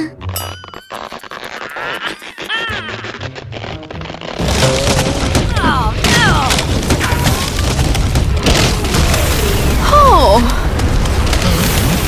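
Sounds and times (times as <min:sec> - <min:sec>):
cartoon crackling and splintering rumble: 0:00.9 - 0:12.0.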